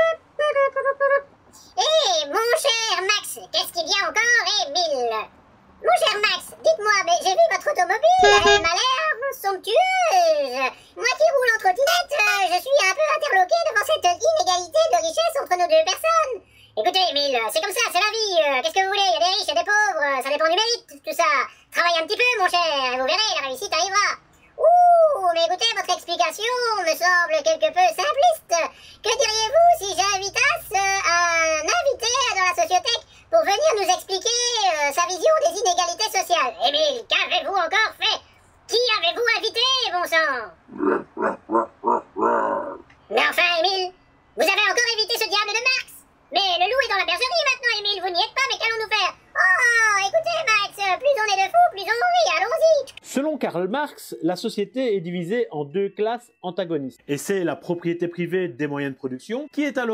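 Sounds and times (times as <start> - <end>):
high-pitched squeaky voice chattering: 0.0 - 2.7, 8.0 - 9.4
high-pitched voice speaking: 8.0 - 9.3.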